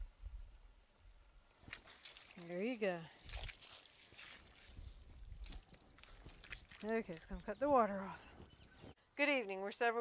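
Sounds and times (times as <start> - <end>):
hose water splashing: 1.5 - 8.2.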